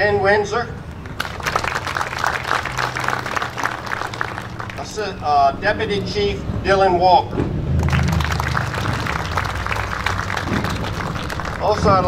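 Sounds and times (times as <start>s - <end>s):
audience applauding: 1.0s - 5.1s, 7.8s - 12.0s.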